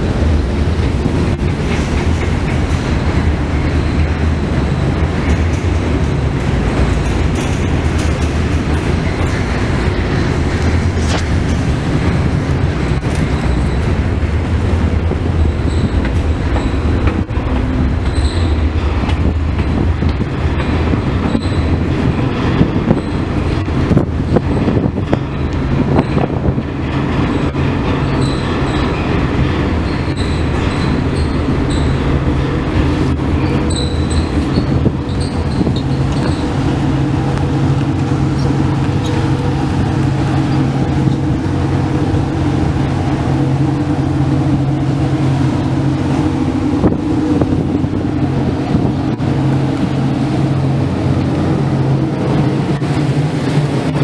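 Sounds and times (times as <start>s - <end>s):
ship engine rumble: 0.0s - 54.0s
water rushing wash: 0.0s - 54.0s
high-pitched squeaks: 27.3s - 29.2s, 29.8s - 32.4s, 33.4s - 36.8s.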